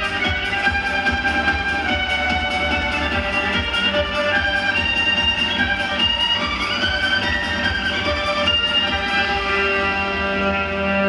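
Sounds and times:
backing track with steady beat: 0.0 - 11.0
electric violins playing melody: 0.0 - 11.0.

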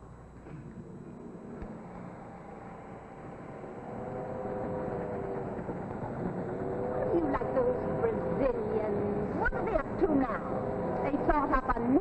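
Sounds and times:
railway carriage rumble: 0.0 - 12.0
steady held tones: 0.0 - 12.0.

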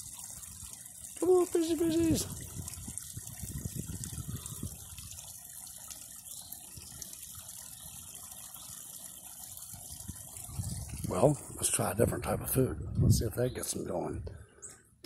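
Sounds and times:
waterfall splashing into pond: 0.0 - 11.3.

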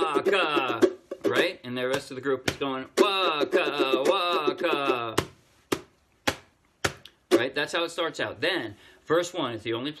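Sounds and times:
percussive hits on ukulele: 0.0 - 7.5.

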